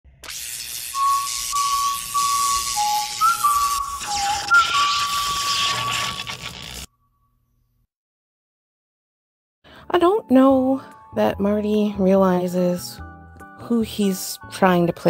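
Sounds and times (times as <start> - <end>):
hissing crackling noise: 0.2 - 6.9
whistle-like electronic notes: 0.2 - 7.1.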